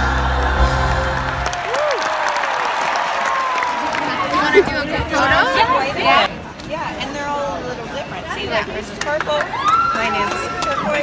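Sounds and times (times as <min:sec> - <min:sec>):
children and women talking: 0:04.1 - 0:11.0.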